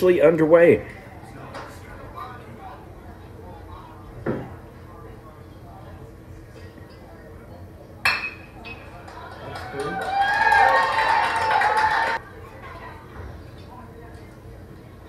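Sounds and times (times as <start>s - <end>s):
fans cheering and yelling: 9.0s - 12.2s.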